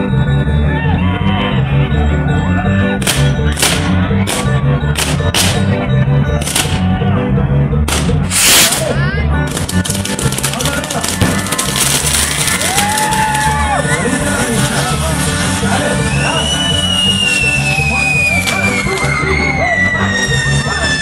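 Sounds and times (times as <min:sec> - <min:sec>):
loud music with bass beat: 0:00.0 - 0:21.0
firework reports: 0:03.0 - 0:05.8, 0:06.4 - 0:06.9, 0:07.8 - 0:21.0
fizzing crackle of sparks: 0:08.3 - 0:08.9, 0:09.5 - 0:19.2.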